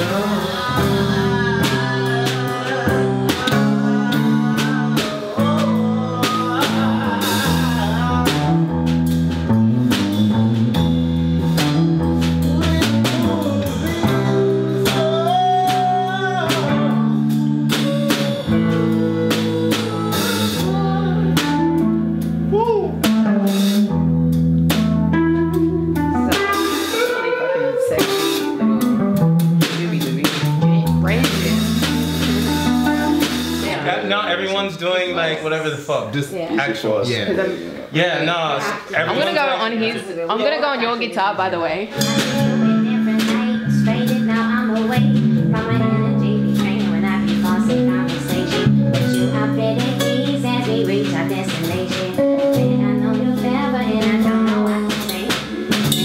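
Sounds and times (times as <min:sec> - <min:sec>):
electric guitar: 0:00.0 - 0:34.2, 0:41.0 - 0:56.0
drum kit: 0:00.0 - 0:34.9, 0:39.0 - 0:56.0
keyboard: 0:40.6 - 0:56.0.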